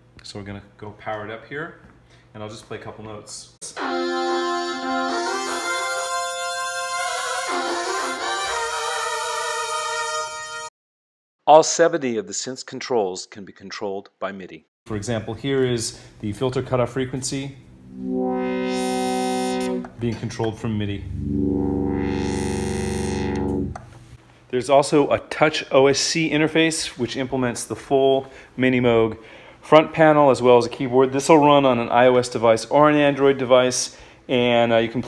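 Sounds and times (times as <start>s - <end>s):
synthesizer notes sliding in pitch: 17.7s - 20.0s, 20.8s - 23.8s.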